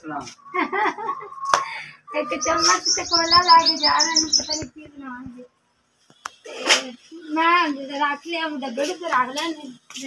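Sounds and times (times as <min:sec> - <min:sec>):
small bird chirping rapidly: 0:00.3 - 0:05.2.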